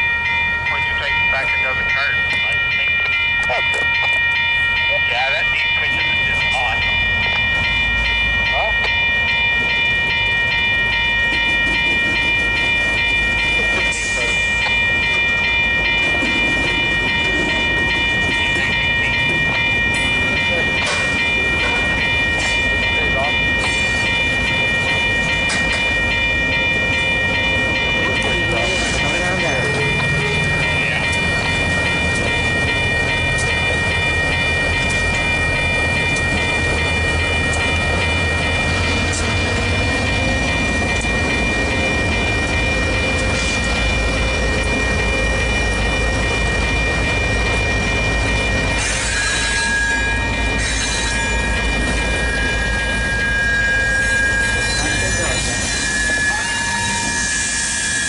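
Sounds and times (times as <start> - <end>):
crossing warning bell ringing: 0.0 - 58.0
diesel locomotive rumble: 0.0 - 58.0.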